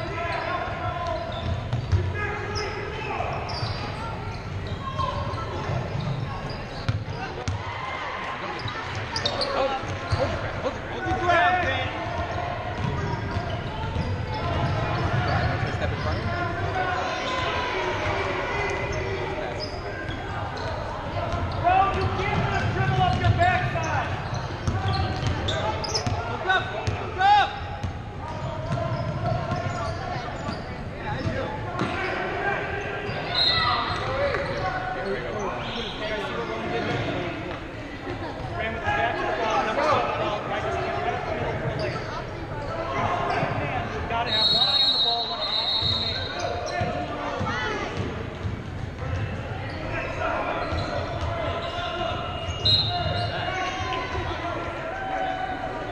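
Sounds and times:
sneakers squeaking: 0.0 - 55.9
voices echoing in hall: 0.0 - 55.9
basketball bouncing: 12.8 - 15.2, 24.6 - 26.2.

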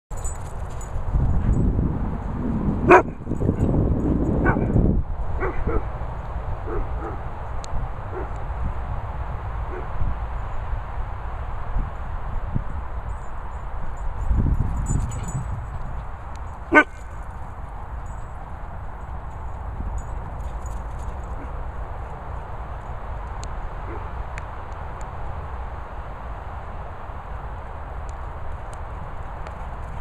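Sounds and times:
dogs barking: 2.8 - 3.2, 4.4 - 4.8, 5.4 - 6.0, 6.6 - 7.3, 8.1 - 8.4, 9.7 - 9.9, 16.7 - 17.1, 23.8 - 24.2.

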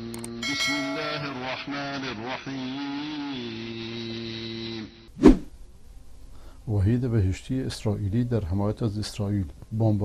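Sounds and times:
man chanting a recitation: 0.0 - 5.1.

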